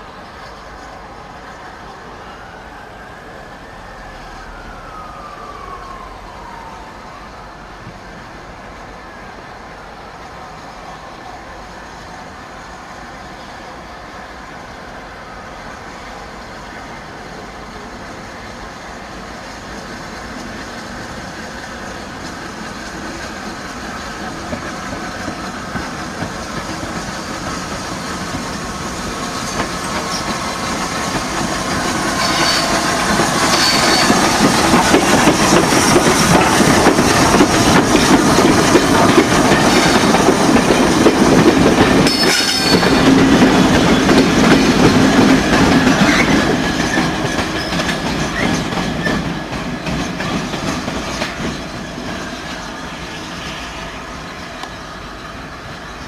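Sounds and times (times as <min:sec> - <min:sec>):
steam train rolling past: 0:00.0 - 0:56.0
wheels clicking over rail joints: 0:21.8 - 0:52.7
high-pitched wheel squeals: 0:32.1 - 0:34.4, 0:42.0 - 0:43.2.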